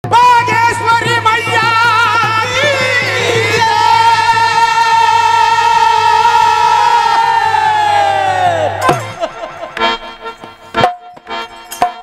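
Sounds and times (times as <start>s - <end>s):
harmonium: 0.0s - 12.0s
men singing devotional song: 0.2s - 8.9s
hand drum beats: 8.8s - 12.0s.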